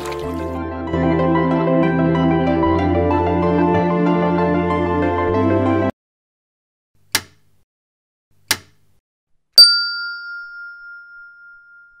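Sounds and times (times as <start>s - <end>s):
bell ding ringing: 9.6s - 12.0s.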